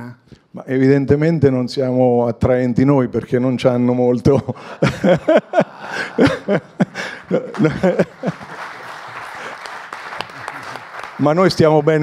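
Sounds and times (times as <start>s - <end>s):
audience laughing: 4.8s - 11.0s
audience clapping: 5.8s - 12.0s.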